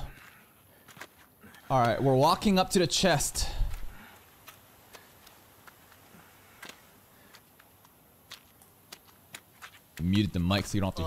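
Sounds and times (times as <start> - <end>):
low background hiss: 1.4 - 11.0
faint scattered clicks: 3.6 - 10.8.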